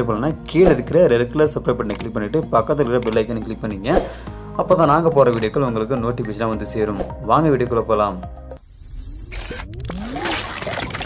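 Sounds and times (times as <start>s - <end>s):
sharp synthetic clicks: 1.9s - 2.1s, 3.0s - 3.3s, 8.6s - 11.0s.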